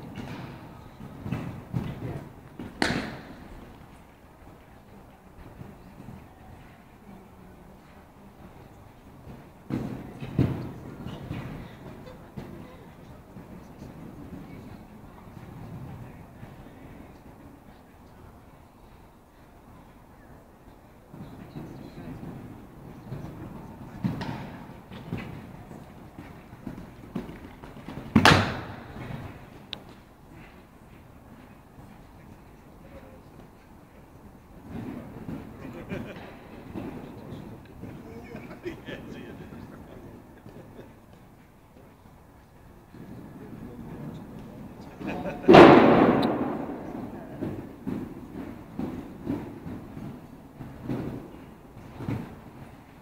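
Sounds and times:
horse hooves cantering on sand: 0:00.0 - 0:53.0.

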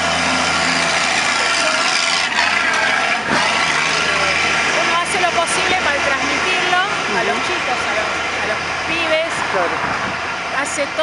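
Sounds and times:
vehicle engine and tyre noise: 0:00.0 - 0:11.0.

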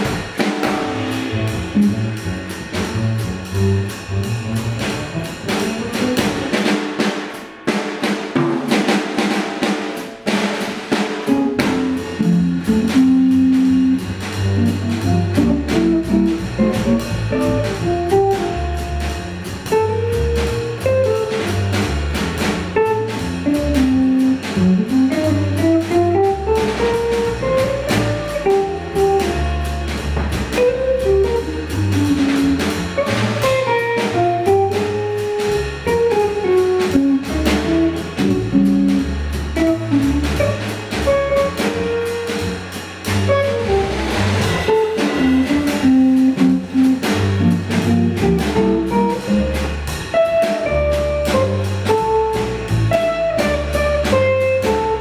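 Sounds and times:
bass line: 0:00.0 - 0:06.8, 0:11.0 - 0:55.0
jazz drumming: 0:00.0 - 0:55.0
pitched accompaniment notes: 0:00.1 - 0:06.6, 0:11.3 - 0:21.9, 0:22.7 - 0:55.0.

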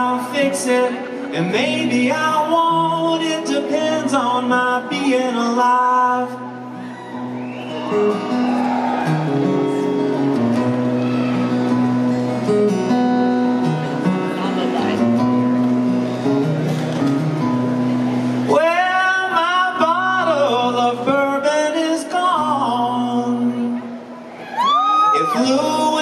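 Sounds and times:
acoustic guitar playing: 0:00.0 - 0:26.0.

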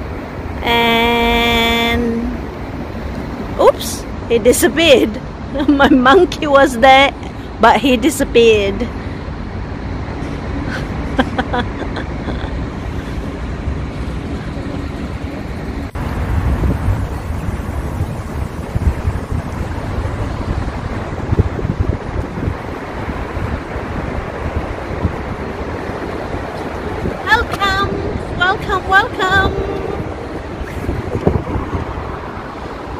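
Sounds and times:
outdoor city noise: 0:00.0 - 0:32.9
wind buffeting microphone: 0:00.0 - 0:32.9
person laughing: 0:10.7 - 0:12.7.

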